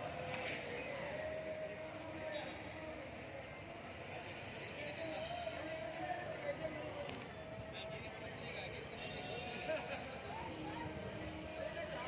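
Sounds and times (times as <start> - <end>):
open-air background noise: 0.0 - 12.0.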